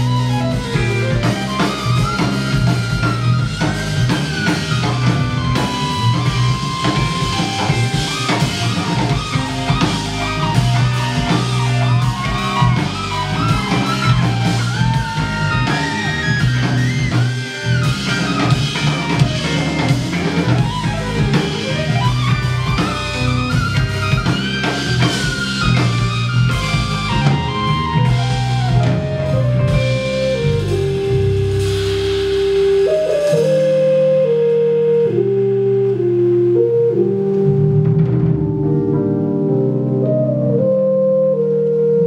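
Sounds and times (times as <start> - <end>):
drum kit: 0.0 - 36.1, 36.9 - 40.2
bass: 0.0 - 42.0
electric guitar lines: 0.0 - 42.0
keyboard tones: 0.0 - 42.0.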